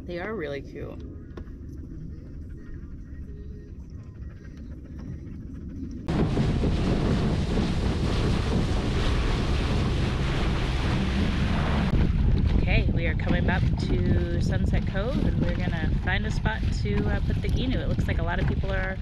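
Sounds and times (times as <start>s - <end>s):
muffled underwater sound: 0.0s - 19.0s
wind buffeting microphone: 0.0s - 19.0s
water rushing past boat: 6.1s - 19.0s.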